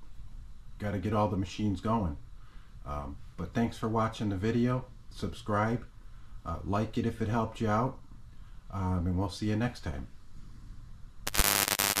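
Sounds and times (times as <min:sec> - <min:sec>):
loud static-like hissing: 0:11.2 - 0:12.0.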